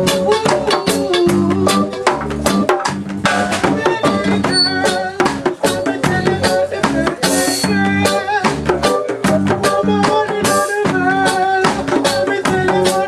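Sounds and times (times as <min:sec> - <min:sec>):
steady percussion beat: 0:00.0 - 0:13.0.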